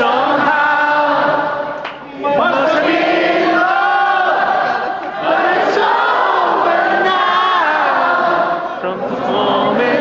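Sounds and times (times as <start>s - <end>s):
concert crowd singing together: 0.0s - 10.0s.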